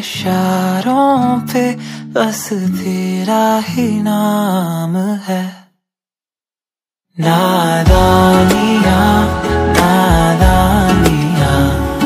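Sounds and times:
person singing: 0:07.2 - 0:12.0
soft backing music: 0:07.8 - 0:12.0.

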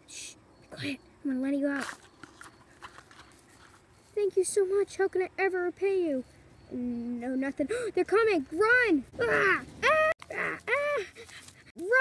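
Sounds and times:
light rustling in clover: 0:01.7 - 0:04.6.

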